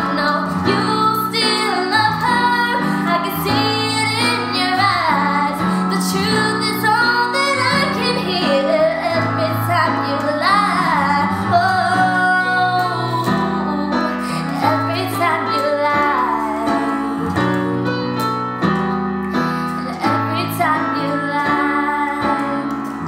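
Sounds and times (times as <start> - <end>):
woman singing a slow ballad: 0.0 - 17.6, 19.6 - 23.0
electric keyboard chords: 0.0 - 23.0.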